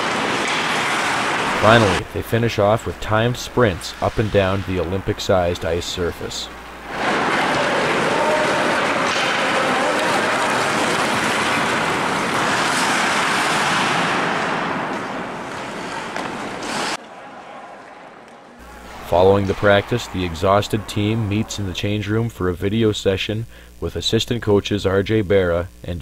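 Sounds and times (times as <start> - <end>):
skate blades scraping ice: 0.0 - 2.0, 6.9 - 17.0.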